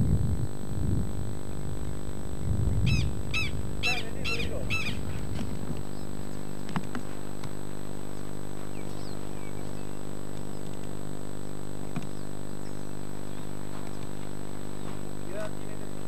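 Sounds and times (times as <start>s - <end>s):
low rumble and hum: 0.0s - 16.0s
bird calling: 2.8s - 6.6s, 8.6s - 10.8s, 12.0s - 15.1s.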